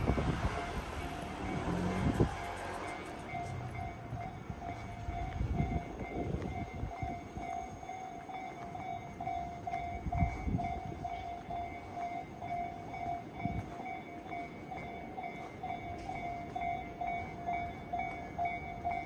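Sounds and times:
level crossing warning bell ringing: 0.0s - 19.0s.

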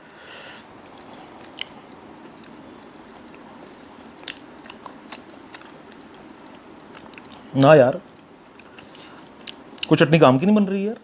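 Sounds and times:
person chewing crispy fried chicken: 0.9s - 9.9s.

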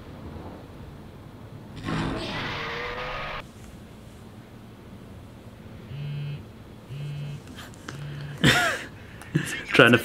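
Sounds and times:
noisy sound effect with steady tones: 1.5s - 3.5s.

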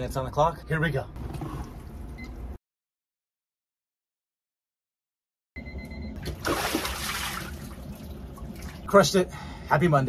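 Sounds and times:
water sloshing off a body: 6.2s - 8.9s.

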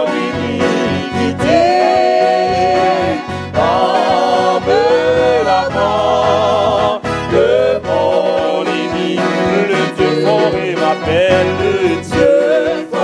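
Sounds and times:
instrumental accompaniment: 0.0s - 13.0s
man singing a hymn with vibrato: 0.0s - 13.0s.

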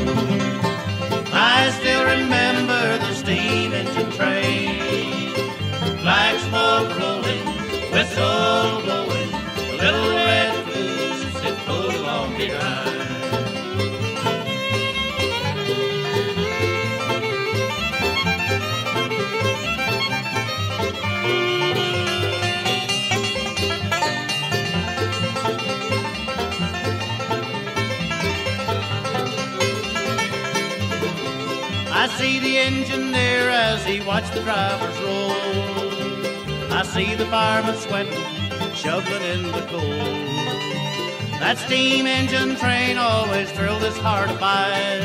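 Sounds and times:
banjo: 0.0s - 45.0s
bluegrass band playing: 0.0s - 45.0s
fiddle: 0.0s - 45.0s.

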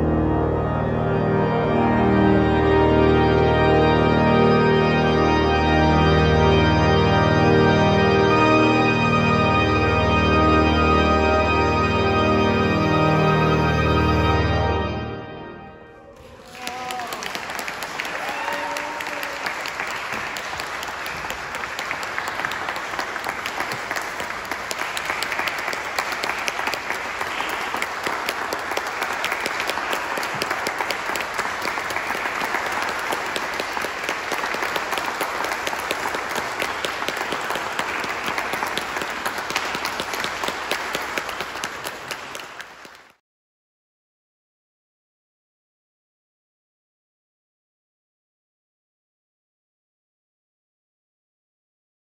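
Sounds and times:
audience applause: 16.1s - 43.2s.

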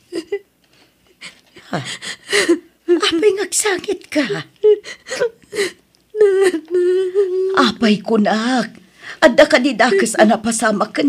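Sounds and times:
person whimpering: 4.6s - 7.6s
person wailing: 6.2s - 7.8s.

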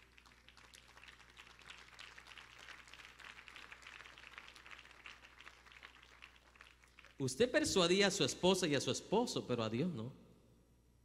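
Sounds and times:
low steady hum: 5.2s - 11.0s.

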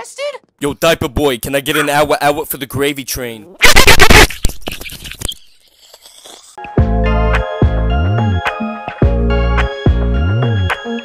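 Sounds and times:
distorted person laughing: 3.6s - 4.6s.

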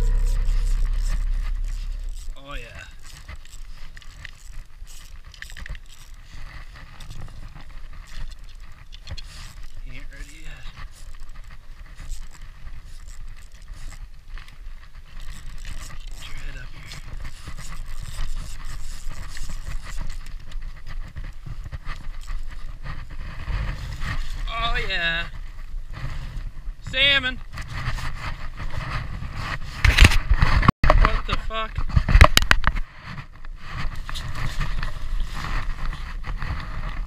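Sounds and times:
low wind rumble: 0.0s - 4.0s
fishing reel cranking: 0.0s - 24.9s.

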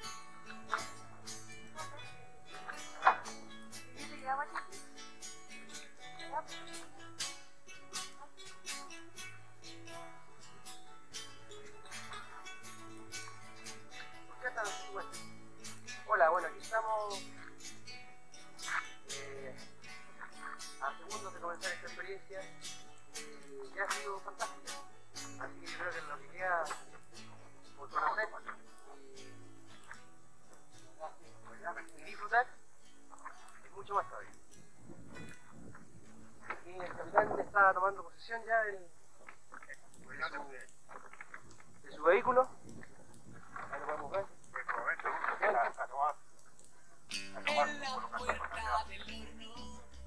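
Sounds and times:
soft background music: 0.0s - 38.7s, 47.1s - 50.0s
man speaking: 14.3s - 15.2s, 16.0s - 17.3s, 19.1s - 19.7s, 20.8s - 22.6s, 23.2s - 24.6s, 25.4s - 26.9s, 27.6s - 29.4s, 30.8s - 32.6s, 36.6s - 38.9s, 39.7s - 40.7s, 43.7s - 46.2s, 47.3s - 49.8s.

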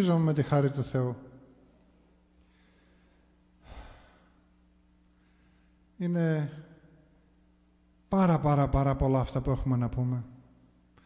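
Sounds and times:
faint steady hum: 0.0s - 11.0s
man breathing out: 2.4s - 4.4s.

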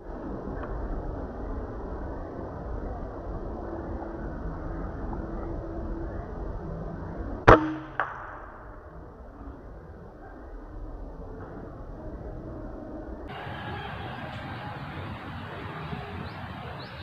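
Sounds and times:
air rifle shot crack: 7.5s - 8.8s.

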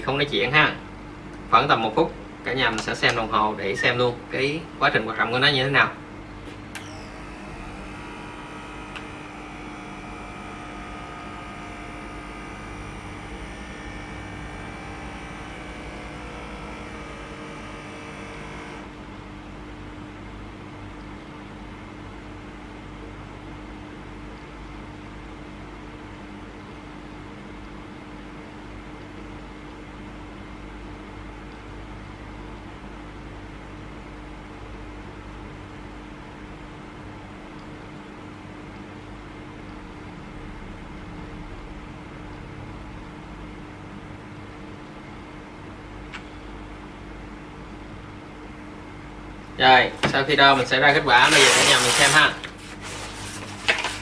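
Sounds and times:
steady low hum: 0.0s - 54.0s
air pump motor whine: 6.5s - 19.9s, 49.4s - 54.0s.

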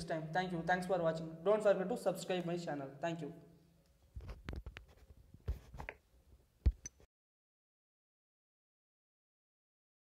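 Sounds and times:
scratchy scrapes: 4.2s - 6.0s.

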